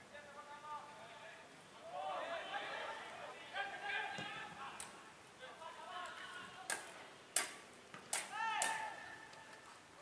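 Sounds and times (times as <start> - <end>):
player shouting: 8.3 - 9.3.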